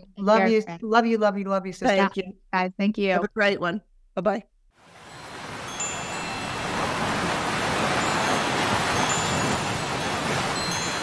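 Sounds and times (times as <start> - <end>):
ocean waves breaking: 4.8 - 11.0
wind chimes ringing: 5.0 - 11.0.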